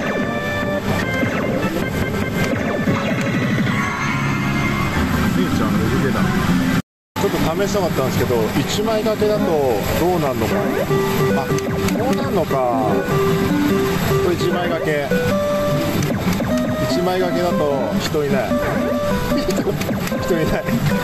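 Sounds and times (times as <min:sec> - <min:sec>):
slot machine electronic music: 0:00.0 - 0:06.8, 0:08.8 - 0:21.0
gaming parlour noise: 0:00.0 - 0:21.0.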